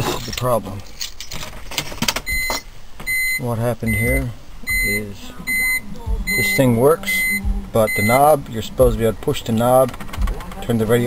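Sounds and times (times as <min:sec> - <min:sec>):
high-pitched electronic whine: 0:03.8 - 0:11.0
car stereo clicks: 0:09.2 - 0:11.0.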